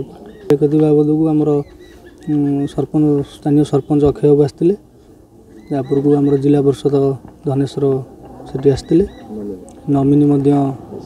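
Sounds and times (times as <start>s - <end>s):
man speaking: 0.0s - 4.8s, 5.6s - 11.0s.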